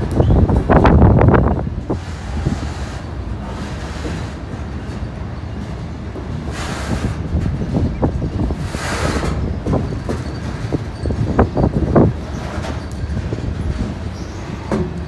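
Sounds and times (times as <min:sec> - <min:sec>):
train wheels rumbling on rails: 0:00.0 - 0:15.0.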